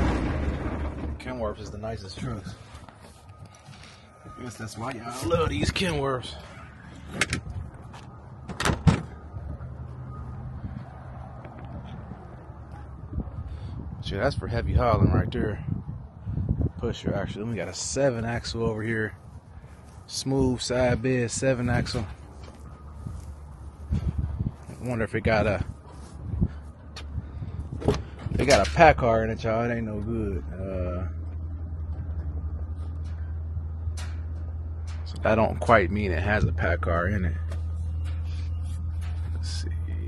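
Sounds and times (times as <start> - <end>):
low steady rumble: 0.0 - 40.0
truck door clunk: 7.0 - 9.2, 27.7 - 28.8
diesel truck engine idling: 19.1 - 40.0.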